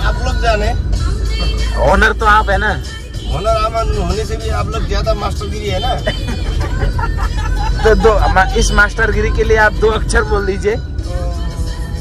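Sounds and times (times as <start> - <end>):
background music: 0.0 - 12.0
car engine and tyre rumble: 0.0 - 12.0.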